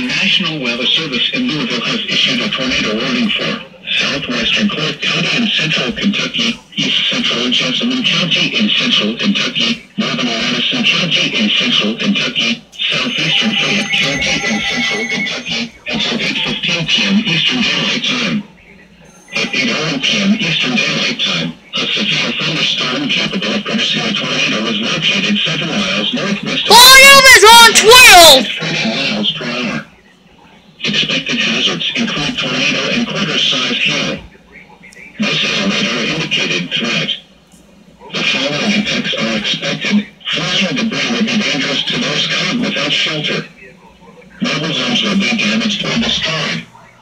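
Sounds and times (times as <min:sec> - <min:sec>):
presenter talking on television: 0:00.0 - 0:47.0.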